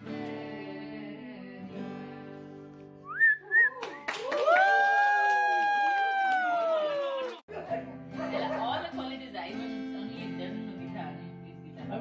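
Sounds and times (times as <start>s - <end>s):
person whooping: 3.1s - 7.4s.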